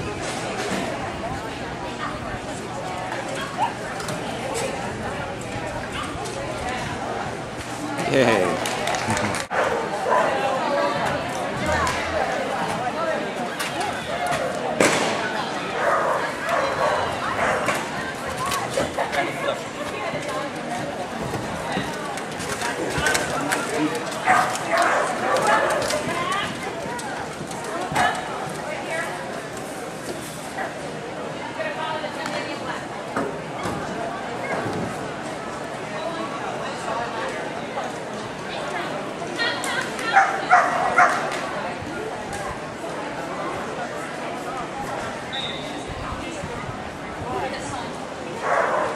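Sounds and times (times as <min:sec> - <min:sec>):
people's voices: 0:00.0 - 0:48.9
dog barking: 0:40.2 - 0:41.2, 0:48.4 - 0:48.9.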